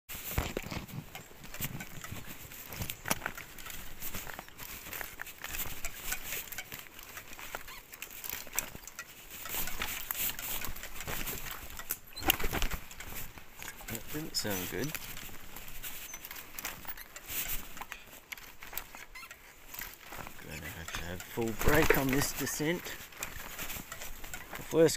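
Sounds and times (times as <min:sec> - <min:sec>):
trike clicking and rattling: 0:00.1 - 0:24.9
tyres crunching over dirt: 0:00.1 - 0:24.9.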